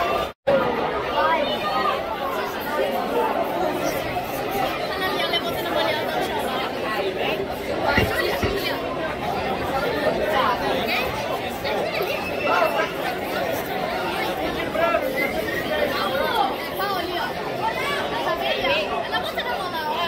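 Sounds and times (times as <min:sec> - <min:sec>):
spectators chatting: 0:00.0 - 0:20.0.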